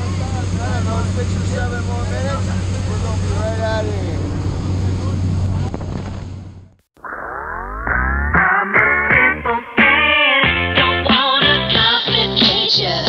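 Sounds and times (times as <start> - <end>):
plane engine drone: 0.0 - 10.3
music with a beat: 7.9 - 13.0.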